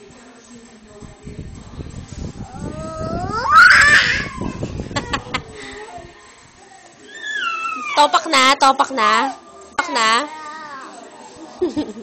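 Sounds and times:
child squealing: 3.0 - 4.5.

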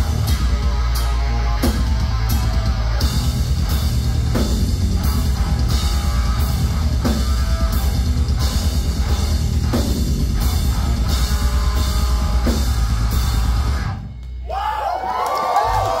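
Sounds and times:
pounding drums and crash cymbals: 0.0 - 14.1
heavy band playing live: 0.0 - 14.8.

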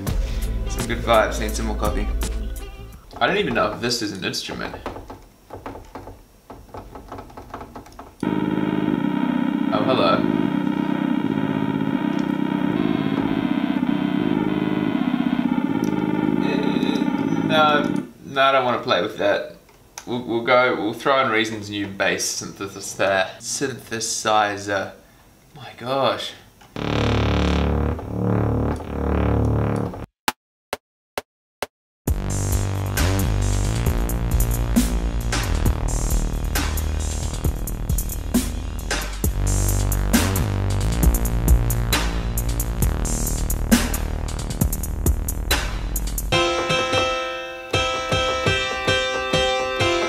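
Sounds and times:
deep synthesizer bass notes: 0.0 - 3.9, 8.2 - 18.0, 26.8 - 30.1, 32.1 - 46.4
fluttering synthesizer chord: 8.2 - 18.0, 26.8 - 29.4.

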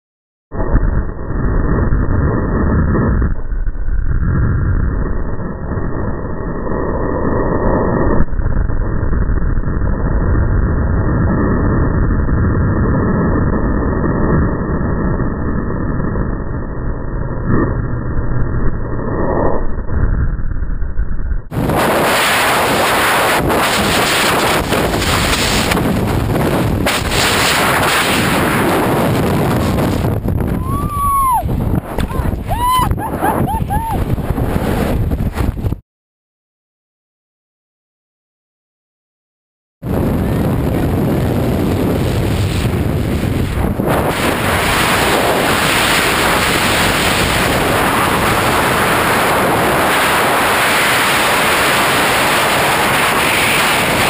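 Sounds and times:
wind roaring over microphone: 0.5 - 35.8, 39.8 - 54.0.

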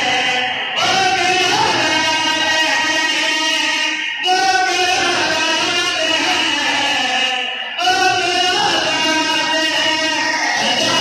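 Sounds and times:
men singing through loudspeaker: 0.0 - 11.0.

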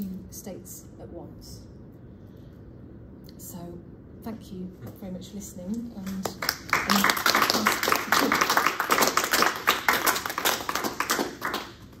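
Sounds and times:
small audience applauding: 6.1 - 12.0.

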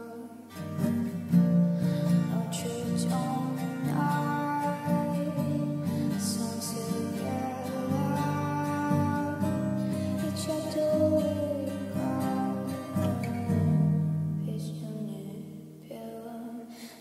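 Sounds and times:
slow song with guitar: 0.0 - 17.0.

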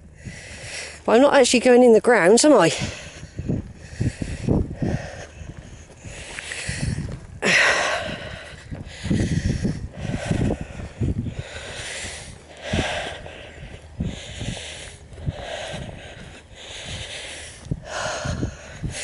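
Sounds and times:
person breathing heavily: 0.0 - 1.1, 2.6 - 19.0.

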